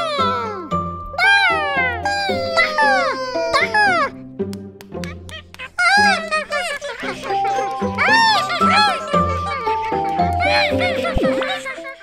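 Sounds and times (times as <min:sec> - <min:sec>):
squeaky cartoon voices babbling: 0:00.0 - 0:04.1, 0:05.2 - 0:12.0
light background music: 0:00.0 - 0:12.0.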